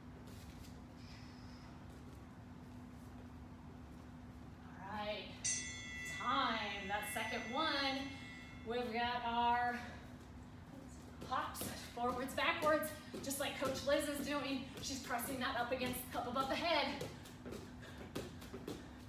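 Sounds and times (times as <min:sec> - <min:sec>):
low steady hum: 0:00.0 - 0:19.0
woman talking: 0:04.7 - 0:05.4, 0:06.2 - 0:10.0, 0:11.2 - 0:17.0
timer bell chime: 0:05.3 - 0:09.6.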